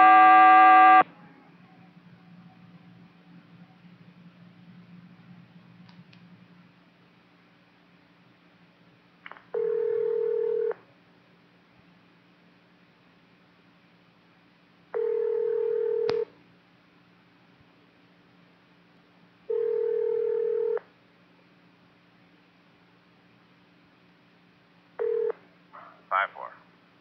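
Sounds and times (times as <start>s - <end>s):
long steady radio beeps: 0.0s - 1.0s
radio hiss: 25.8s - 26.7s.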